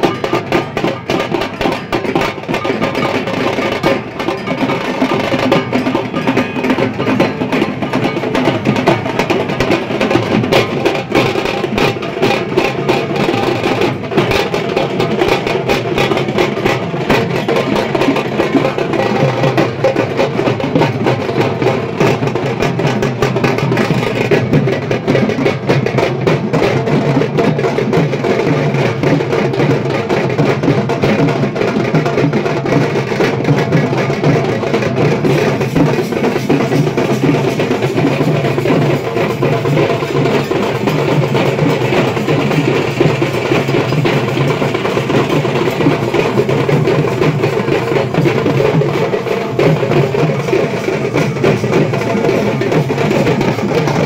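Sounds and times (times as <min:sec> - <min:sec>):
barrel drums beaten with sticks: 0:00.0 - 0:54.0
smaller drums: 0:00.0 - 0:54.0.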